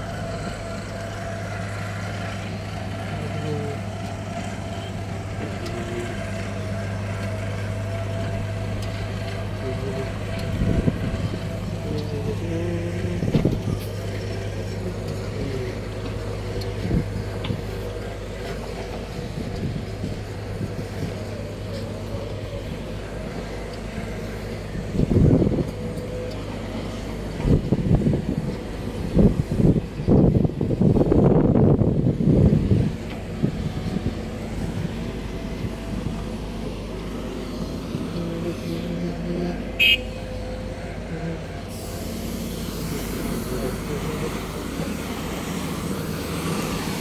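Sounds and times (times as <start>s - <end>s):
diesel machinery humming: 0.0s - 47.0s.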